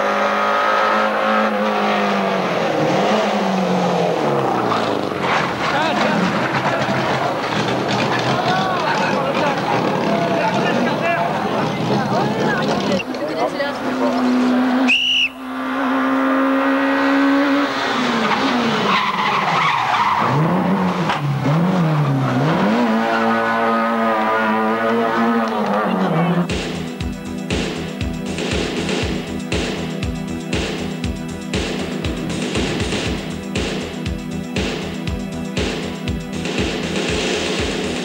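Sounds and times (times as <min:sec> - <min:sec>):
rally car engine revving: 0:00.0 - 0:38.0.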